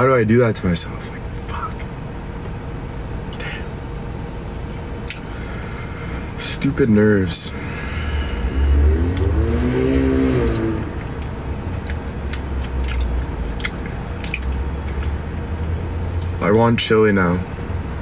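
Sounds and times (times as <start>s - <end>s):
low car cabin rumble: 0.0s - 18.0s
person humming: 8.1s - 11.0s.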